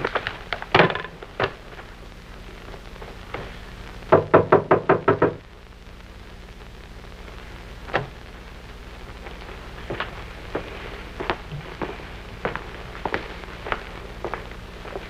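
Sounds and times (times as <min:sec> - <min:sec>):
knocking on a door: 0:04.1 - 0:05.4.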